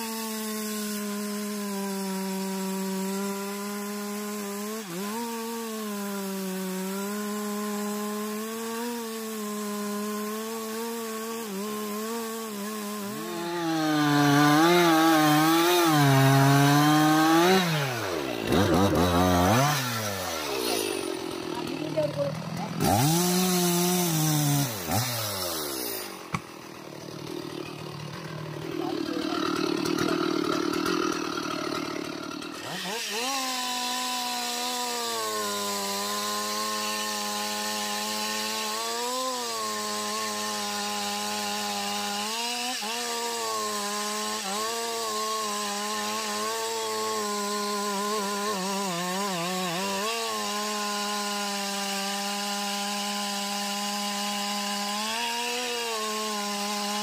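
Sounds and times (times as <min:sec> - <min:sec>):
chainsaw cutting wood: 0:00.0 - 0:57.0.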